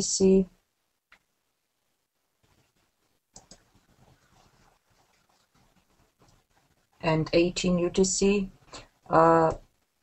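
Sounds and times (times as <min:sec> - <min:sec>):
computer mouse clicks: 0:03.3 - 0:06.5.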